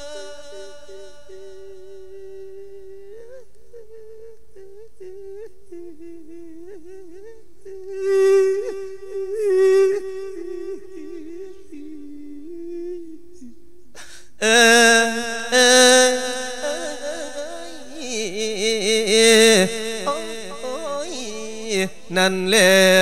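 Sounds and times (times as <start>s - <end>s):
man humming into a microphone: 0.0s - 23.0s.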